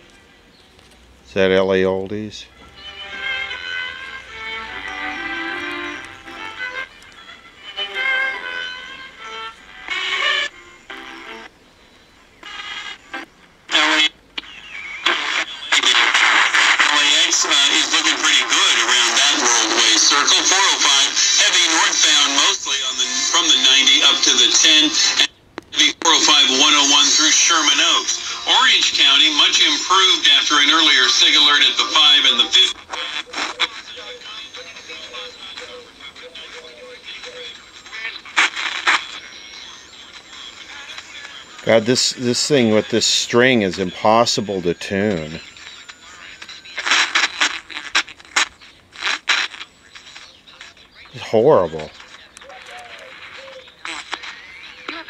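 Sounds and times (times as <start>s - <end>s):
music from radio speaker: 2.4s - 11.5s, 12.4s - 55.0s
radio speech snatches: 13.7s - 55.0s.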